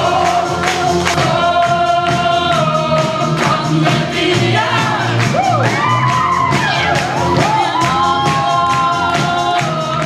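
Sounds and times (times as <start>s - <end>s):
backing music with steady beat: 0.0s - 10.0s
group of voices singing: 0.0s - 10.0s.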